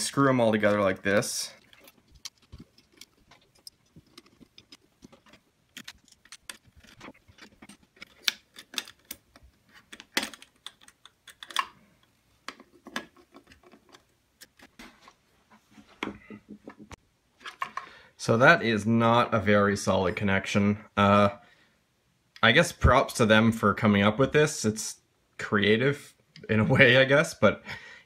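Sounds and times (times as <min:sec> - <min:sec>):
metal parts clicking and tapping: 0:01.6 - 0:14.7.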